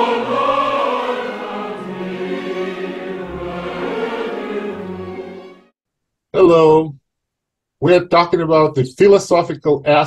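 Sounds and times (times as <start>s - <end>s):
choir singing held notes: 0.0s - 5.7s.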